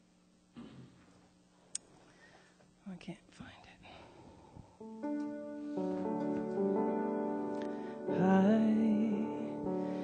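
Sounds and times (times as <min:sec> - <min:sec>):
person whispering: 0:02.8 - 0:04.1.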